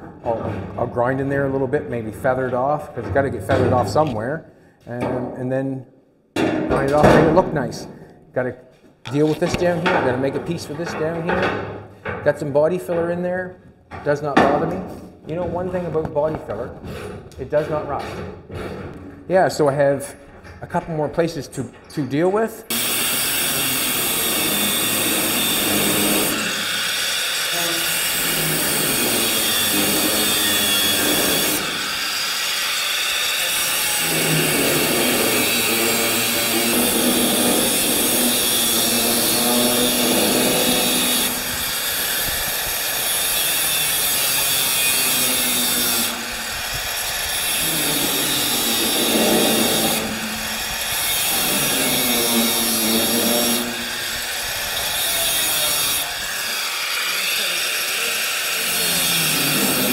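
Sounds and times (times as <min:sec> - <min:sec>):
angle grinder grinding metal: 0:22.7 - 0:59.9.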